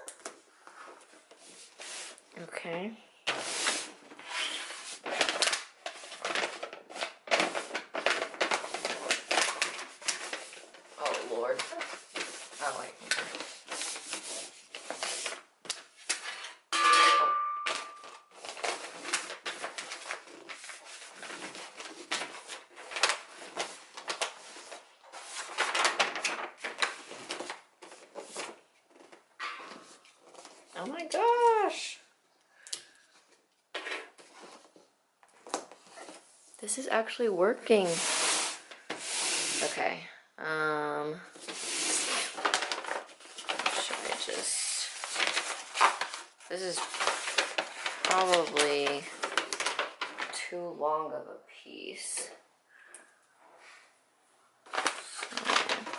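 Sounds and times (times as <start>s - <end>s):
wrapping paper crinkling: 3.3s - 16.6s, 17.7s - 31.7s, 41.4s - 50.6s, 54.6s - 55.9s.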